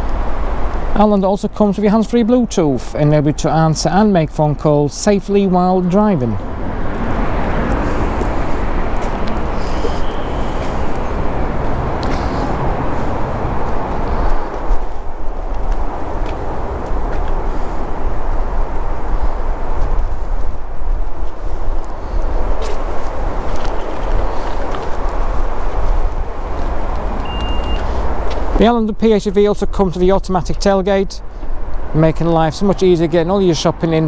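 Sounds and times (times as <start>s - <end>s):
wind rumbling on microphone: 0.0s - 34.0s.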